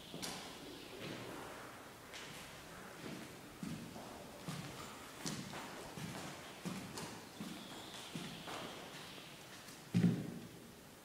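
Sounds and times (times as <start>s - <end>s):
footsteps on wooden floor: 2.1s - 10.4s.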